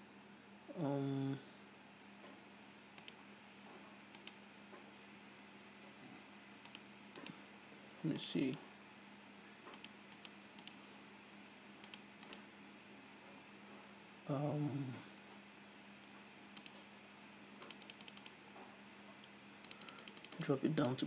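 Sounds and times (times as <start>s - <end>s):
faint electrical hum: 0.0s - 21.0s
mouse and keyboard clicks: 6.6s - 7.4s, 17.6s - 18.4s, 19.2s - 21.0s
person humming: 14.3s - 15.1s.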